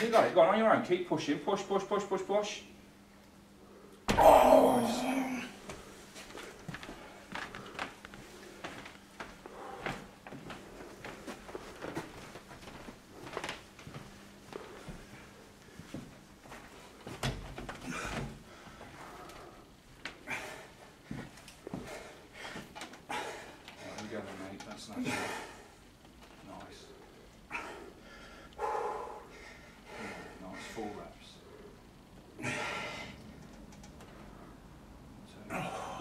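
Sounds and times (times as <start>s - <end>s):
indistinct voices: 4.1s - 5.6s.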